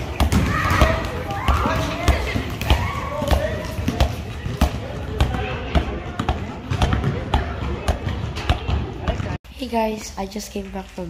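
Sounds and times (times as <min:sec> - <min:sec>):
basketballs bouncing on paving: 0:00.0 - 0:09.4.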